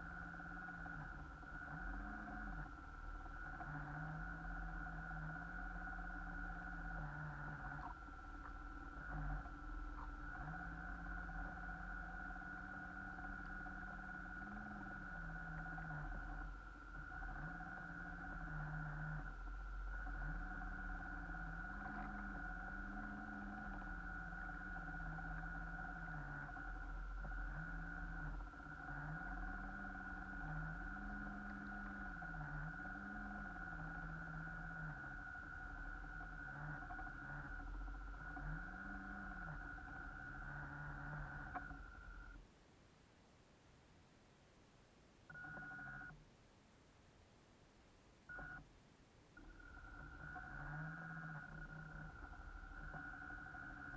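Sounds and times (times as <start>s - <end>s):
boat motor hum: 0.0s - 42.5s, 45.2s - 46.2s, 48.2s - 53.9s
steady high whine: 0.0s - 53.9s.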